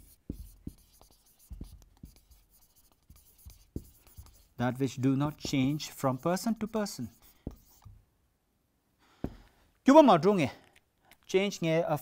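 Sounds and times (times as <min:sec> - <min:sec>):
marker pen writing on whiteboard: 0:00.0 - 0:08.0, 0:09.2 - 0:09.5.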